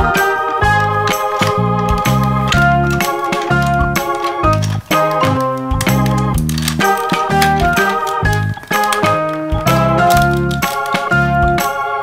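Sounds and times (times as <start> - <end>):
keyboard tune: 0.0 - 12.0.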